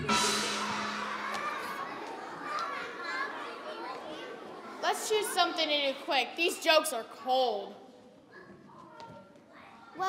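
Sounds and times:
murmur of children's voices: 0.0 - 10.0.

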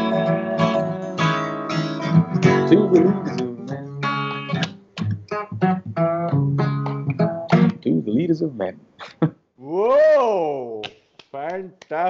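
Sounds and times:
acoustic guitar strumming chords: 0.0 - 8.0.

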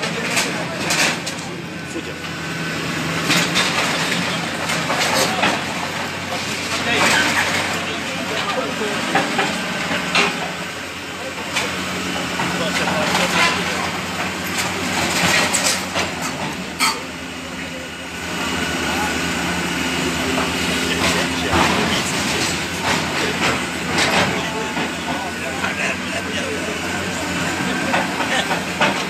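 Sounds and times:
excavator engine humming: 0.0 - 29.0.

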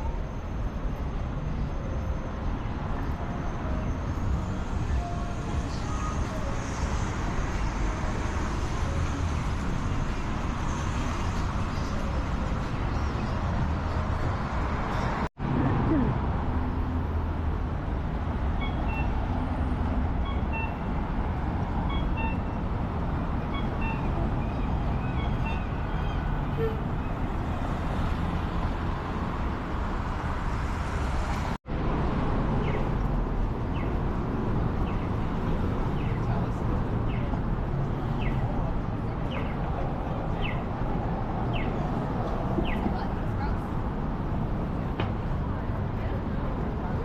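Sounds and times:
traffic noise: 0.0 - 47.0.

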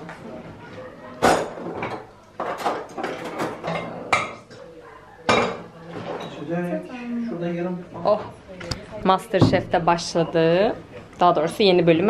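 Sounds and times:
dishes and cutlery clinking: 1.2 - 6.5.

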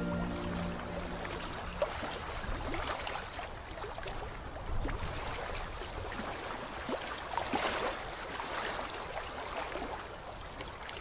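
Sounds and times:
background music: 0.0 - 2.1
low even noise: 0.0 - 2.6.

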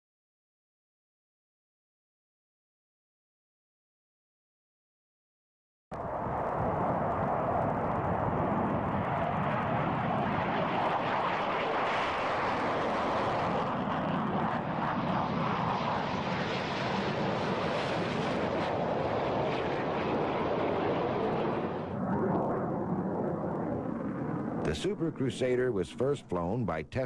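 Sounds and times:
jet fighter engine roaring: 6.0 - 27.0.

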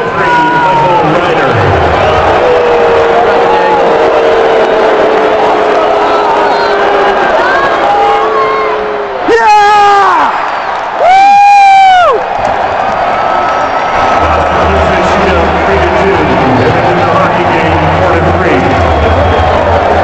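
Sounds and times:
arena crowd noise: 0.0 - 20.0.

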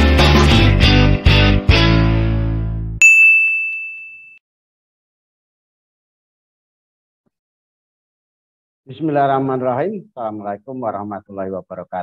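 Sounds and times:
notification bell ding: 3.0 - 4.4.

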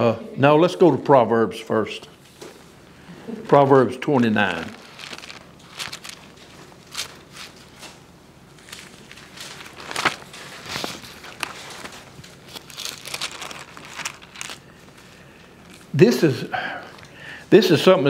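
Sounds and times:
book pages leafed through: 4.2 - 14.7.

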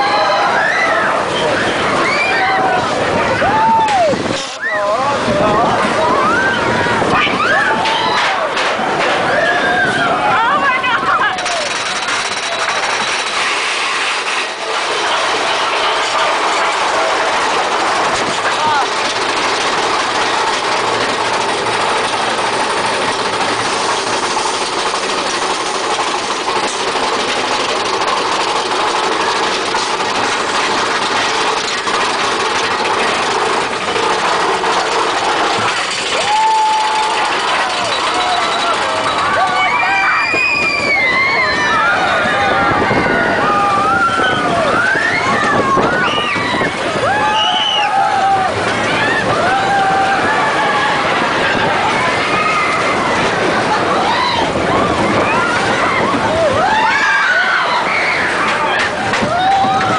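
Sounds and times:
roller coaster chain lift clatter: 0.0 - 59.9.

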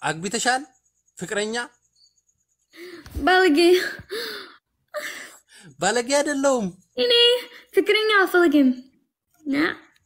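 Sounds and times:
young woman speaking: 3.2 - 4.2, 7.0 - 9.9.

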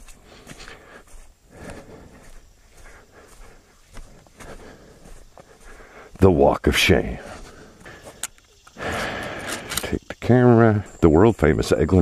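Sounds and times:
footsteps on dirt road: 0.0 - 10.2.

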